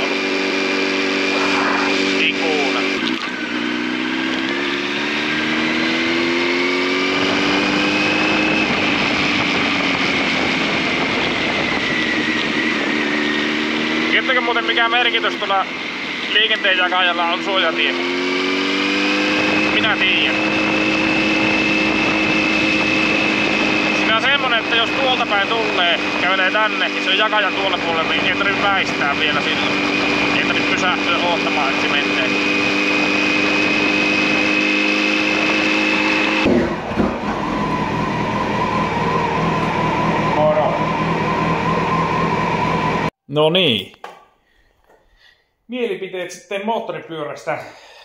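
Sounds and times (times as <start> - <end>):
motorcycle engine cruising: 0.0 - 43.2.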